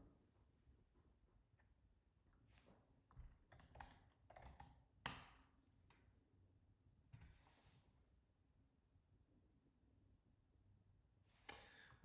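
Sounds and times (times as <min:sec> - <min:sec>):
faint keyboard typing: 0:03.4 - 0:04.8.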